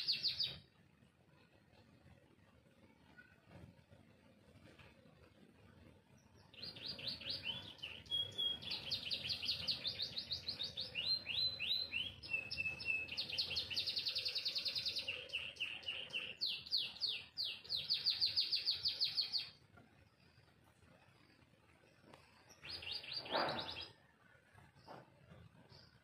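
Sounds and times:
canary singing trills: 0.0s - 0.7s, 6.1s - 19.6s, 22.2s - 26.0s.

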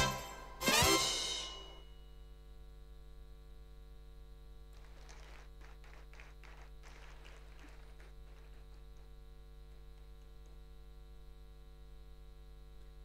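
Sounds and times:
electrical mains hum: 0.0s - 13.0s
scattered applause: 4.7s - 10.4s.

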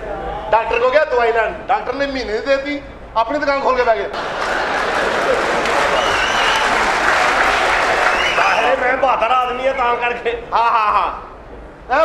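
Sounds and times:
audience applauding: 4.2s - 9.2s.

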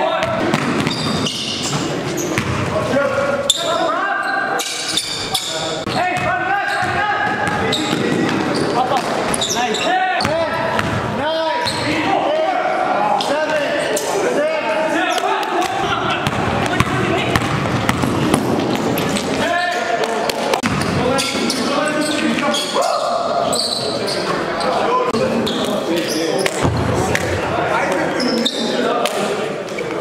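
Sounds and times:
players shouting in echoing hall: 0.0s - 29.6s
basketball bouncing on gym floor: 0.2s - 1.8s, 2.4s - 2.7s, 10.2s - 11.8s, 16.2s - 19.4s.

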